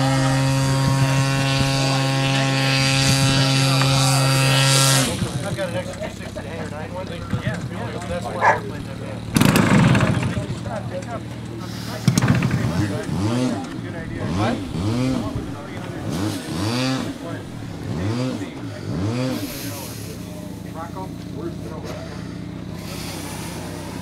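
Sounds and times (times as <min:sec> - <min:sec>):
indistinct voices talking: 0:00.0 - 0:24.0.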